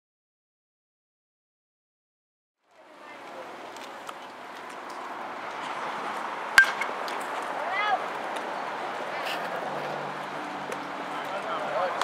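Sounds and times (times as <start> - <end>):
metal bat hitting ball: 6.6 - 7.2.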